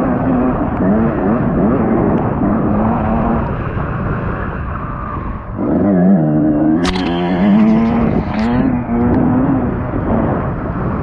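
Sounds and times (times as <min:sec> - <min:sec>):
dirt bike engine revving: 0:05.7 - 0:10.4.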